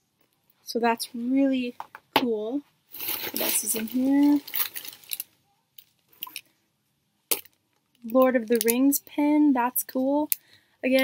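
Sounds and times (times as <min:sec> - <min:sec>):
packaging rustling: 0:02.9 - 0:05.3
packaging crackle: 0:03.0 - 0:05.3.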